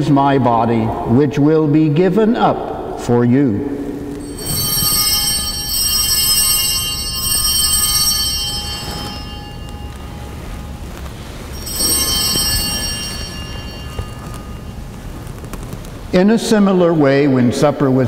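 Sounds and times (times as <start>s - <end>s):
altar bells ringing: 3.8s - 17.1s.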